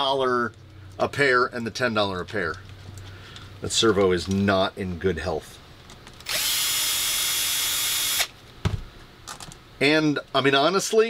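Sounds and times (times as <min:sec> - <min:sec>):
cordless drill running: 0:06.2 - 0:08.3.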